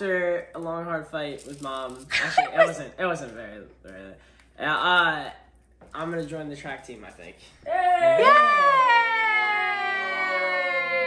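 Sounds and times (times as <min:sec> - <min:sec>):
voices cheering yay: 0:07.7 - 0:11.0.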